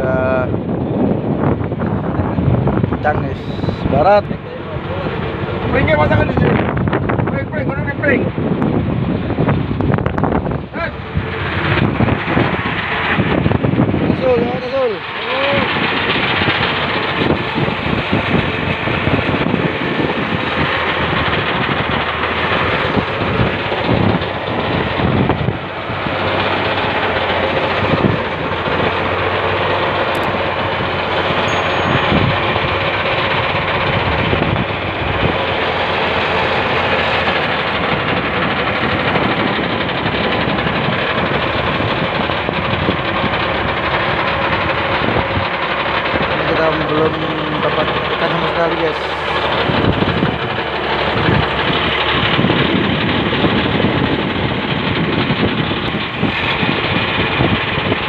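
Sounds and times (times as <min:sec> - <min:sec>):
boat engine running: 0:00.0 - 0:58.0
wind rushing: 0:00.0 - 0:58.0.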